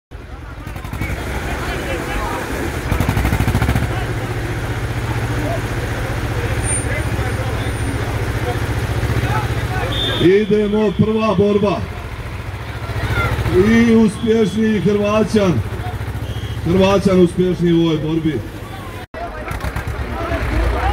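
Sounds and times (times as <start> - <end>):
crowd chatter: 0.1 - 20.9
tractor diesel engines idling: 0.1 - 20.9.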